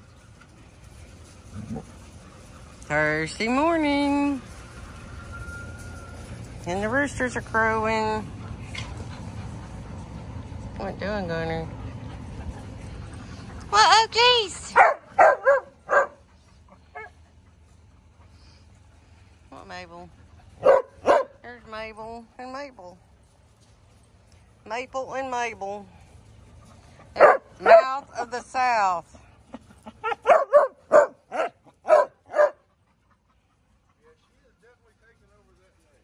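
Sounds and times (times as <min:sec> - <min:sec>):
dog barking high-pitched: 0:14.8 - 0:16.2, 0:20.6 - 0:21.4, 0:27.2 - 0:27.9, 0:30.0 - 0:32.6.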